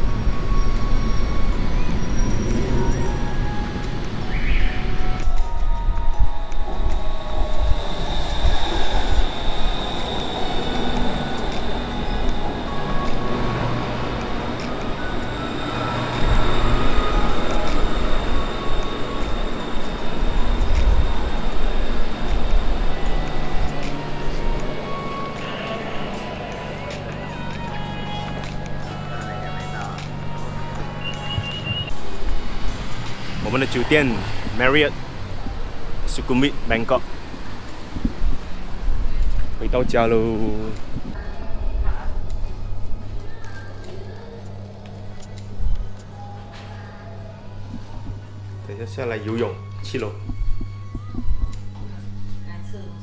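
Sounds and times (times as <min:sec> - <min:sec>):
electric train pulling in: 0:00.0 - 0:53.0
high-pitched train whine: 0:00.0 - 0:53.0.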